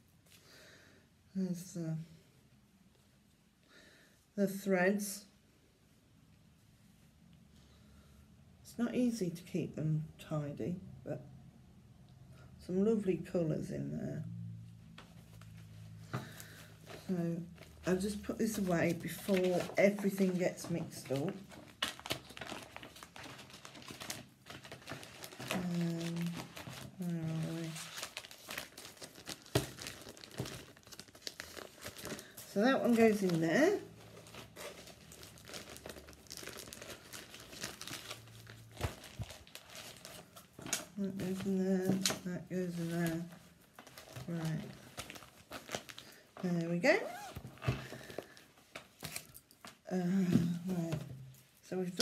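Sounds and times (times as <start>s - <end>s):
person speaking: 16.9s - 21.5s, 25.5s - 27.9s, 32.4s - 34.0s, 40.9s - 43.4s, 49.9s - 52.0s.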